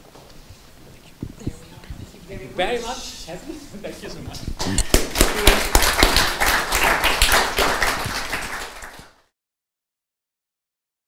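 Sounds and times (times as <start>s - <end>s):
audience applauding: 4.6s - 9.3s.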